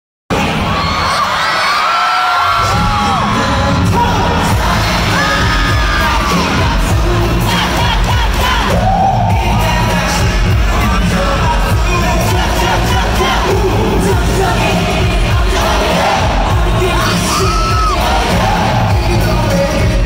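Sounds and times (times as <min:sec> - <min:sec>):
crowd screaming and cheering: 0:00.3 - 0:20.0.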